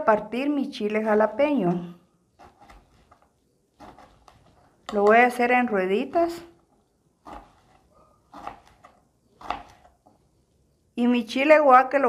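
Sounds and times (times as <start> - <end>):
knife cutting on cutting board: 2.4 - 5.0, 7.2 - 10.1.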